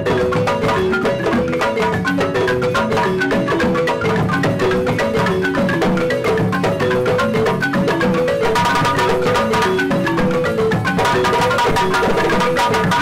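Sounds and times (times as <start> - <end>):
hand drum beating: 0.0 - 13.0
wooden xylophones playing: 0.0 - 13.0.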